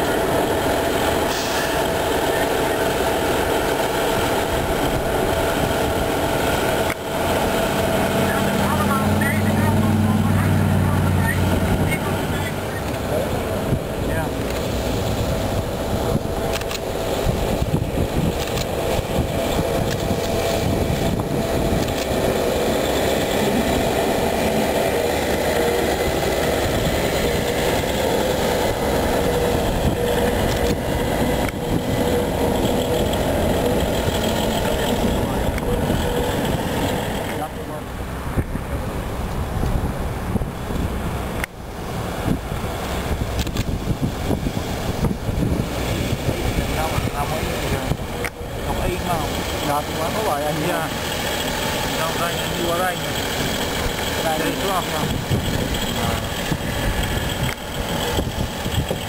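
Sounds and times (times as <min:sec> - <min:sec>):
deeper engine hum: 0:00.0 - 0:59.0
diesel engine drone: 0:00.0 - 0:59.0.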